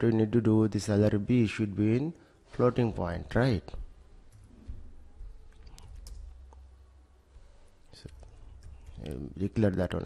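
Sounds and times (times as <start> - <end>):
faint low hum: 0.0 - 10.0
computer keys clicking: 5.2 - 6.7, 7.8 - 9.4.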